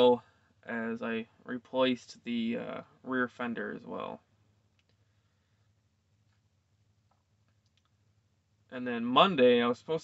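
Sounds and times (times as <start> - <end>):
faint low hum: 0.0 - 10.0
faint clicks: 4.7 - 5.0, 7.1 - 8.0.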